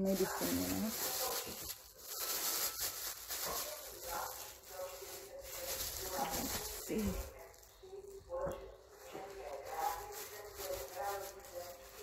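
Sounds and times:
faint voices: 0:00.0 - 0:12.0
plastic bag crinkling: 0:00.0 - 0:12.0.

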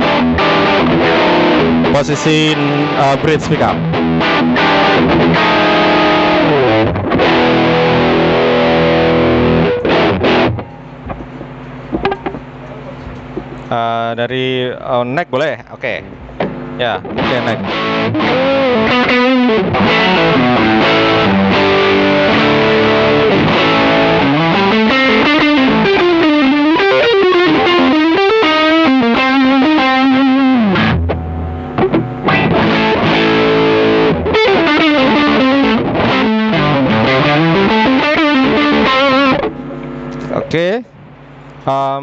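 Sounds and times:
distorted electric guitar lead: 0:00.0 - 0:14.6, 0:15.8 - 0:41.8.

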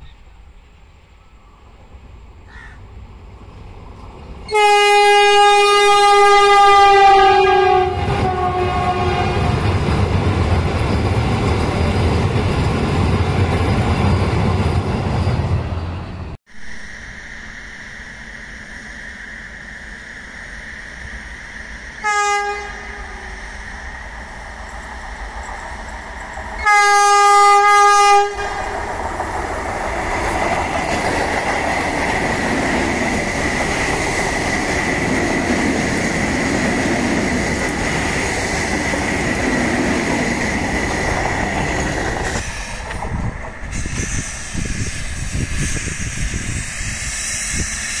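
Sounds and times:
train wheels rushing on rails: 0:01.8 - 0:48.0
train horn blast: 0:04.5 - 0:09.6, 0:22.0 - 0:23.3, 0:26.6 - 0:28.7
thin high whine: 0:16.1 - 0:26.6.

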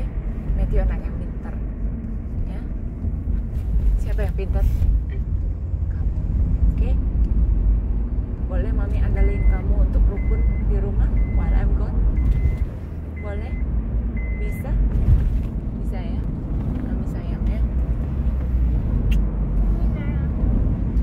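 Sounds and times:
car cabin rumble: 0:00.0 - 0:21.0
car warning chime beeping: 0:09.1 - 0:14.8.

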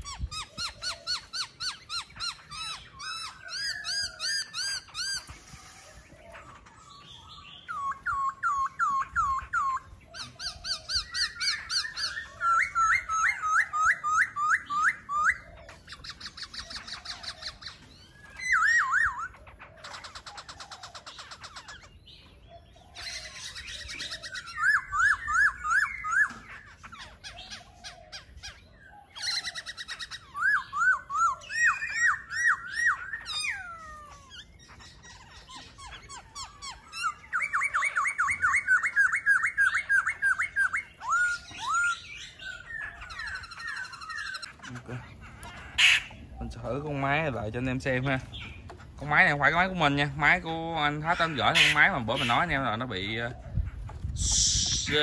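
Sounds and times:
bird singing whistled notes: 0:00.0 - 0:19.4, 0:20.0 - 0:44.6, 0:46.0 - 0:55.0.

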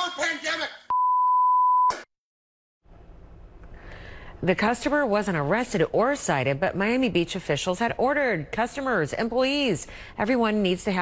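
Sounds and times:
censor bleep: 0:00.9 - 0:02.1.

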